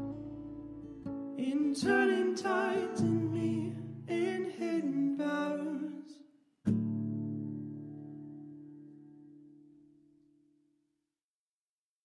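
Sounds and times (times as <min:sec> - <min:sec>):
guitar chord strummed: 0:00.0 - 0:04.4.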